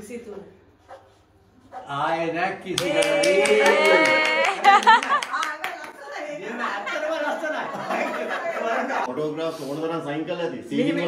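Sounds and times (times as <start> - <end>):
quick hand claps: 2.8 - 6.0.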